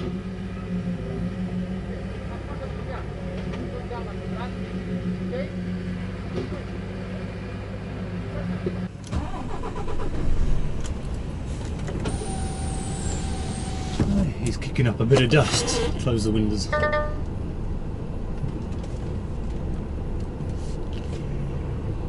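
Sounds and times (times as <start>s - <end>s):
diesel truck engine: 0.0s - 22.0s.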